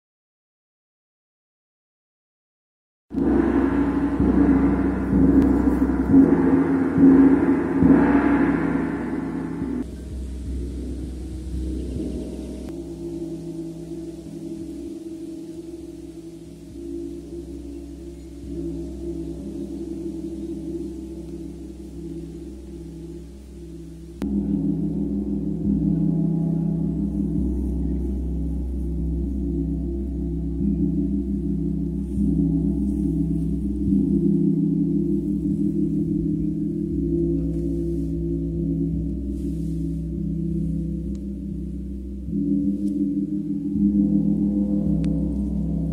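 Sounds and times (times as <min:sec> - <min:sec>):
gongs ringing: 0:03.2 - 0:45.9.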